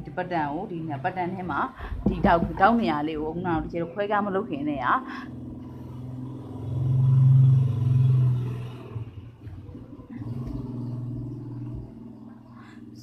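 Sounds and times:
low motor hum: 0.0s - 13.0s.

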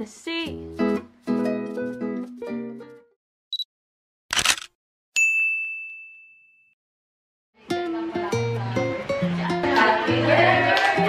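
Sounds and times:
bright ding: 5.2s - 6.6s.

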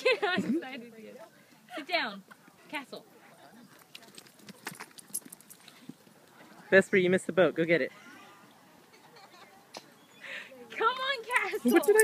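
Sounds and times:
dog claws clicking: 11.3s - 12.0s.

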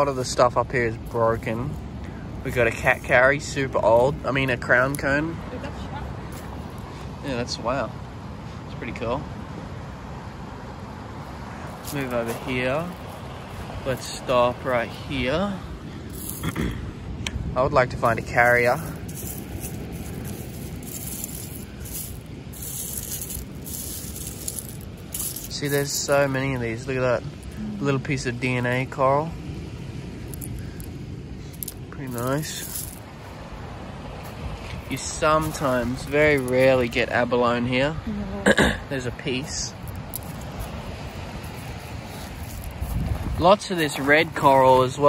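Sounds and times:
beach ambience rush: 0.0s - 45.0s
wind noise on microphone: 39.5s - 45.0s.

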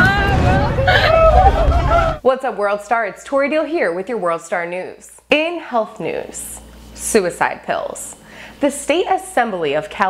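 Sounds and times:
deep bass rumble: 0.0s - 2.2s
voices shouting: 0.0s - 2.2s.

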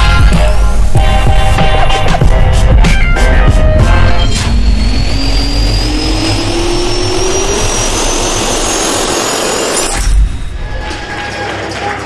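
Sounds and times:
heavy low rumble: 0.6s - 11.3s
jet engine spooling up: 3.7s - 11.3s.

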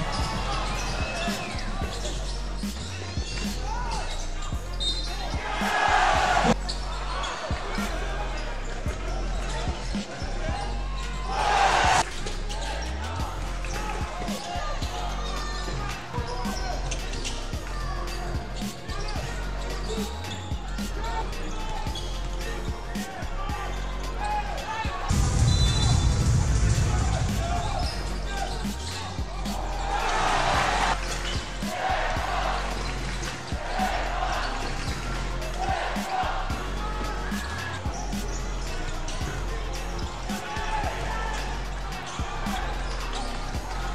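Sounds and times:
arena music: 0.0s - 43.9s
voices: 0.0s - 43.9s.

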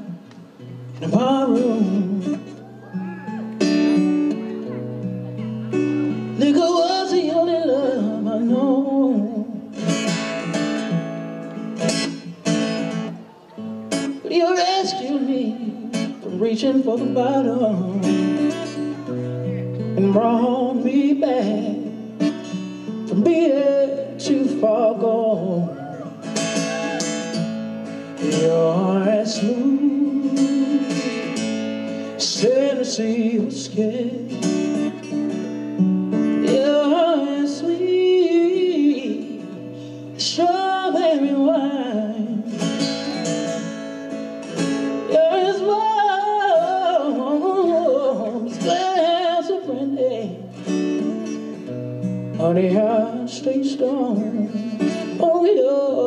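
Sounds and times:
man singing into a microphone: 0.0s - 10.1s, 13.1s - 27.0s, 28.0s - 43.7s, 44.6s - 51.6s, 52.3s - 56.0s
acoustic guitar strumming: 0.0s - 56.0s.

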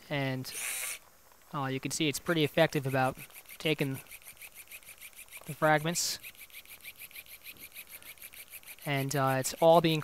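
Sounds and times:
surgical shaver fast pulsing: 0.5s - 1.0s, 2.6s - 10.0s.

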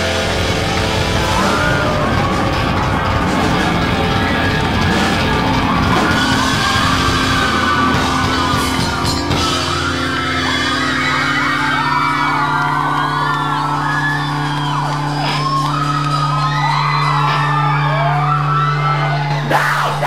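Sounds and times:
live rock band: 0.0s - 19.5s
crowd whooping and yelling: 0.0s - 20.0s.

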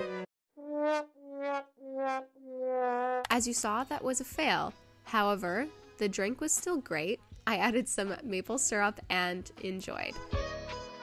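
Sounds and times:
sad trombone brass notes: 0.6s - 3.3s.

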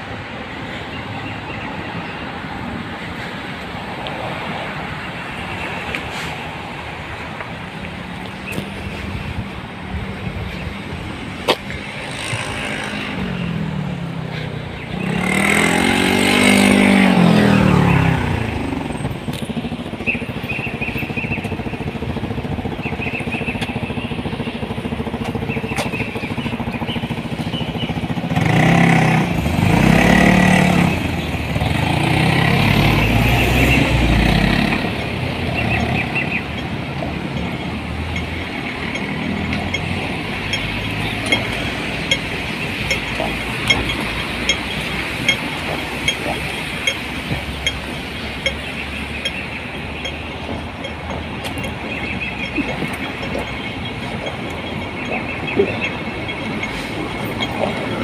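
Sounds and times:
vehicle engines accelerating past: 11.8s - 20.1s, 28.0s - 58.0s.

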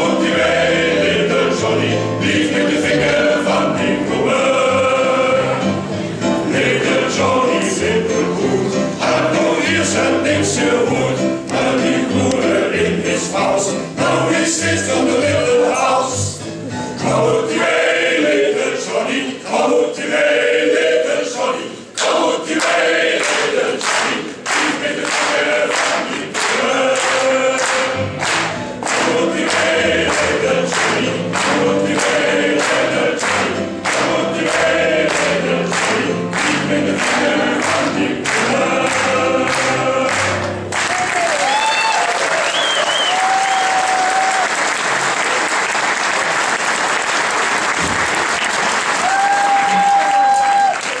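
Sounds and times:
male voices singing country song: 0.0s - 5.8s, 6.5s - 16.4s, 17.0s - 28.2s, 28.9s - 40.6s
audience clapping in time: 21.9s - 51.0s
audience applause: 22.5s - 51.0s.

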